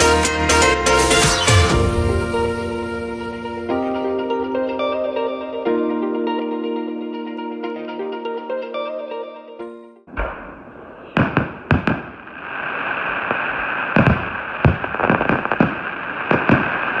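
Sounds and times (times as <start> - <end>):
fireworks banging: 10.1 - 17.0
hiss of burning fireworks: 10.1 - 17.0.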